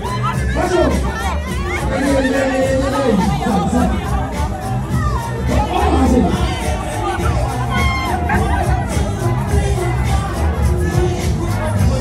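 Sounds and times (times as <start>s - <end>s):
crowd shouting and cheering: 0.0s - 12.0s
loud party music: 0.0s - 12.0s.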